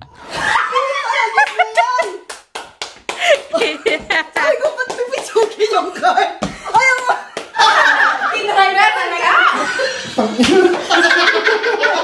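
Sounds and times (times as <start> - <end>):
hand claps: 1.4 - 5.6, 6.4 - 7.6
woman laughing: 3.2 - 4.8.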